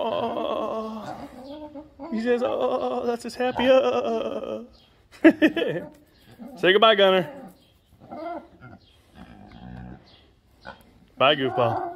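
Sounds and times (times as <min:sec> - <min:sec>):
pig grunting: 0:06.3 - 0:11.9.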